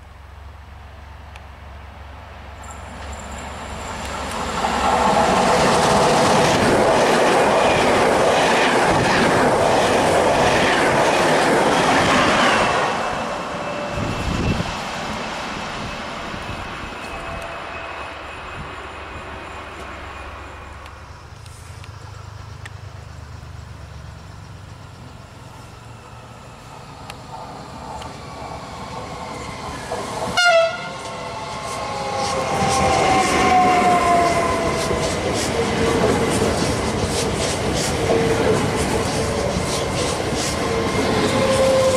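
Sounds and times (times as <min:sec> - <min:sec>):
train passing at speed: 0:00.0 - 0:41.9
electric train whine falling in pitch: 0:11.9 - 0:35.0
train horn blast: 0:30.4 - 0:31.1.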